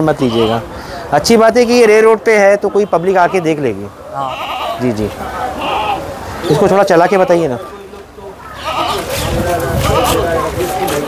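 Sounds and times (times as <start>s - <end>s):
goat bleating: 0.2s - 0.6s, 2.5s - 5.0s, 5.6s - 7.5s, 8.5s - 10.4s.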